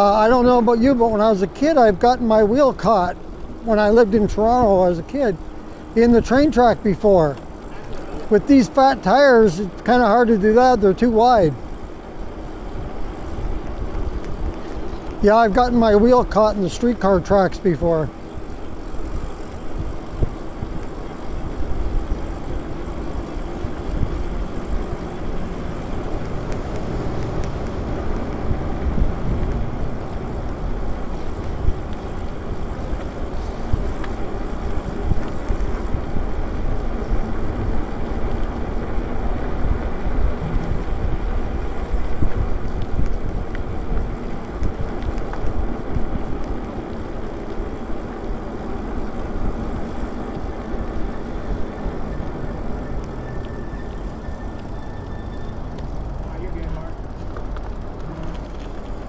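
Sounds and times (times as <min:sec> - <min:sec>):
bike road noise: 0:00.0 - 0:59.0
wind buffeting microphone: 0:18.0 - 0:54.7.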